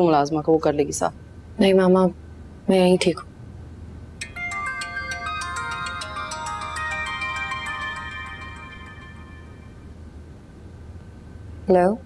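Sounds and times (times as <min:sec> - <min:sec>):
phone ringtone chiming melody: 0:04.2 - 0:09.9.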